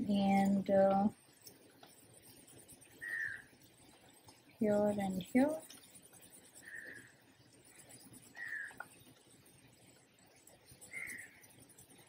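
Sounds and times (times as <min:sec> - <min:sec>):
faint bird calls: 0:03.0 - 0:03.5, 0:06.6 - 0:07.2, 0:08.3 - 0:08.8, 0:10.9 - 0:11.4.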